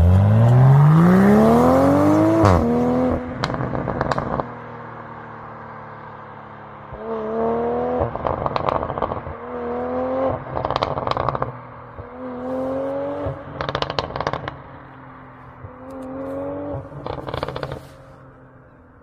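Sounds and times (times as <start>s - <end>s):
car engine revving: 0.0s - 18.7s
exhaust pops and crackles: 3.4s - 4.5s, 8.2s - 9.4s, 10.4s - 12.0s, 13.5s - 14.8s, 15.6s - 18.2s.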